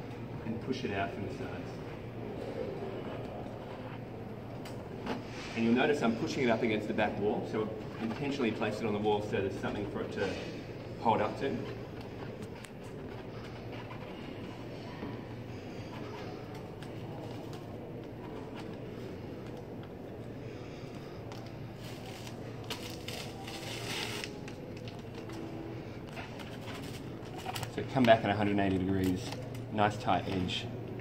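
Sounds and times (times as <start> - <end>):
room hum: 0.0 - 31.0.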